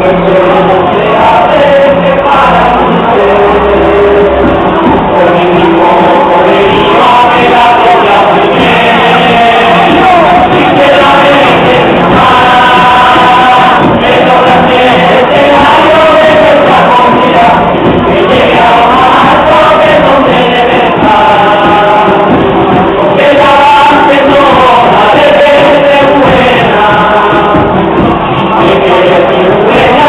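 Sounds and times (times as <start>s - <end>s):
group singing as a choir: 0.0s - 30.0s.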